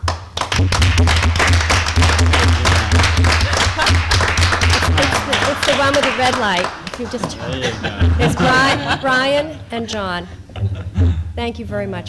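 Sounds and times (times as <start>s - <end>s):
crowd applauding: 0.0s - 9.0s.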